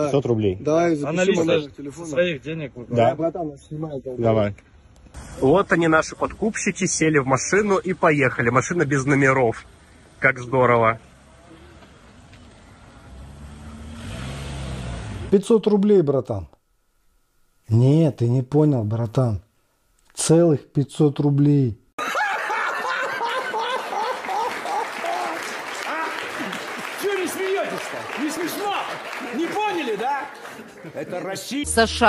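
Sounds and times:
car engine accelerating: 11.0 - 15.4
man speaking: 17.7 - 19.5, 20.1 - 21.8
audience applauding: 22.1 - 31.7.

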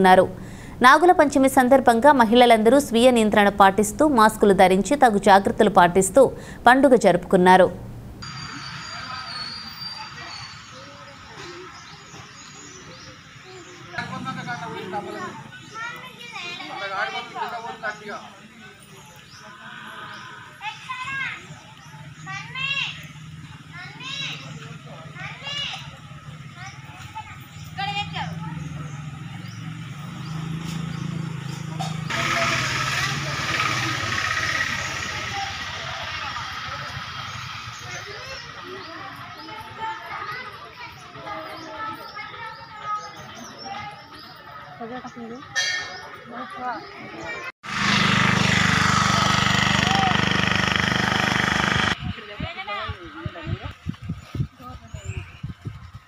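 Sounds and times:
short rising falling chirp: 8.2 - 11.0
engine running: 28.3 - 37.9, 47.6 - 52.0.

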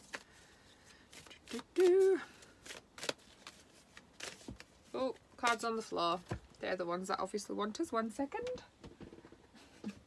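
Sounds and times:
cards rustling: 0.0 - 6.4.

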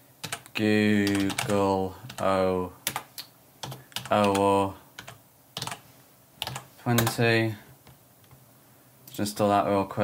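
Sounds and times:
computer keyboard typing: 0.2 - 5.8, 6.4 - 7.2.

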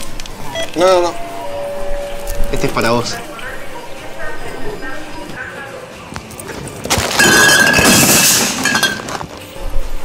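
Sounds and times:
steady ringing tone: 0.5 - 5.1.

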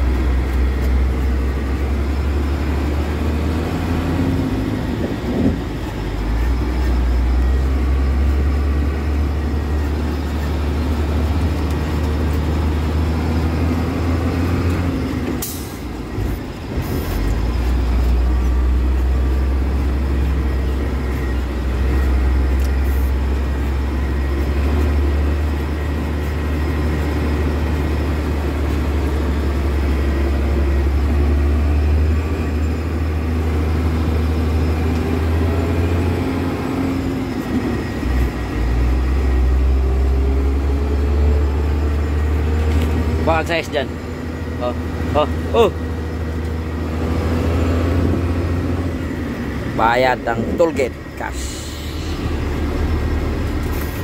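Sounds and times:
truck engine droning: 0.0 - 54.0.

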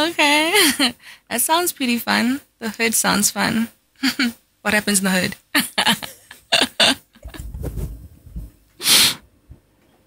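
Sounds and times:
person laughing breathily: 5.9 - 7.8
low rumble: 7.2 - 8.6.

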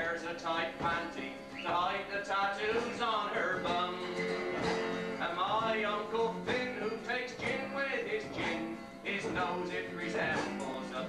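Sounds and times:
men singing together: 0.0 - 4.1, 5.2 - 11.0
acoustic guitar accompaniment: 0.0 - 11.0.

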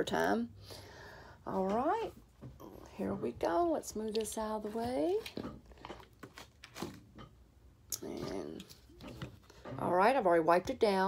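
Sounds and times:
crinkling rustles: 3.9 - 7.2.

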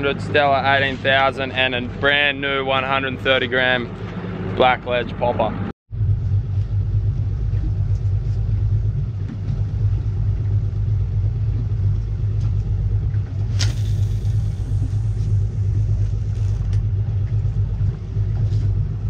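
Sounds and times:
outboard motor idling: 0.0 - 19.0
short sharp hiss: 13.5 - 15.1.

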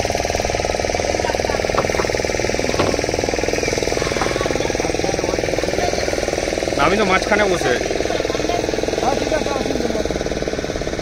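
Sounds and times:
motorboat engine pulsing: 0.0 - 11.0
faint voices: 0.9 - 10.3.

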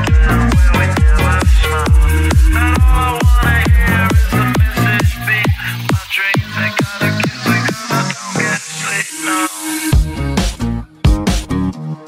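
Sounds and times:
kick drum: 0.0 - 6.5, 10.0 - 11.6
sustained bass: 0.0 - 9.1, 9.9 - 12.0
minimal techno track: 0.0 - 11.8.

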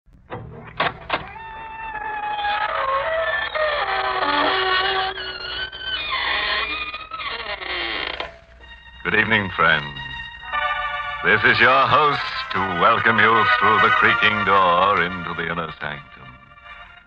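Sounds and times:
organ music: 0.1 - 17.0
door creaking: 0.2 - 15.4.

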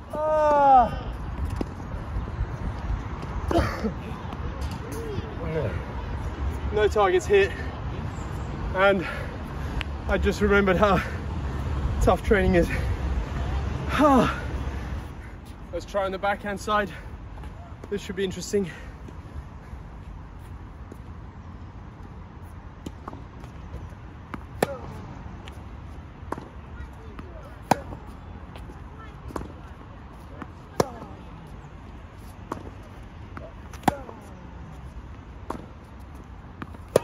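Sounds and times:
tennis racket hitting ball: 24.3 - 25.0, 26.3 - 28.1, 30.4 - 31.2, 33.4 - 34.3, 36.6 - 37.0.

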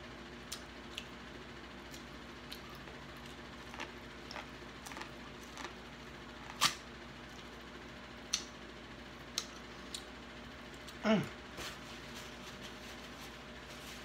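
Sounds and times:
faint steady hum: 0.0 - 14.0
wet chewing and mouth smacks: 1.9 - 5.8.

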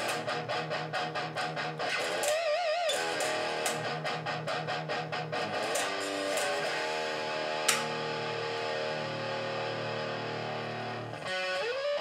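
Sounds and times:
distorted electric guitar chord: 0.0 - 12.0
sharp click: 2.0 - 3.9, 7.6 - 8.2.

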